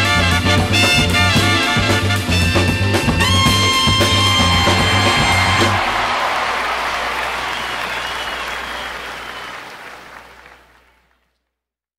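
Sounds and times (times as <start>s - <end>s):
audience applause: 3.8s - 11.4s.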